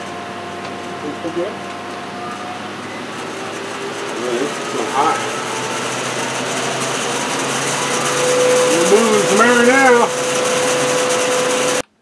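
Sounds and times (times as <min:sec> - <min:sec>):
steady high tone: 0:00.0 - 0:11.8
exhaust fan whirring: 0:00.0 - 0:12.0.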